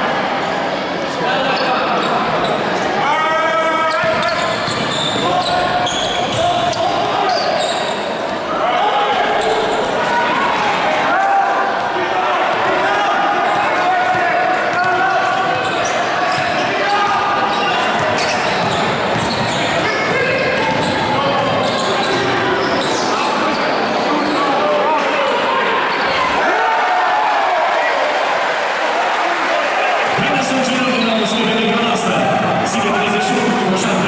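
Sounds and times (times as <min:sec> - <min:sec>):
mixed voices in a hall: 0:00.0 - 0:34.0
basketball bouncing on hardwood: 0:18.6 - 0:21.0.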